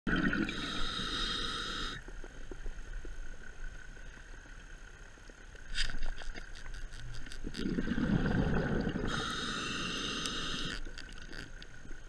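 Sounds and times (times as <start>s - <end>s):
exhaled bubbles rushing underwater: 0.1s - 0.8s, 7.4s - 10.1s
short regulator hiss: 0.5s - 2.0s, 9.0s - 10.9s
faint clicks: 10.1s - 12.0s.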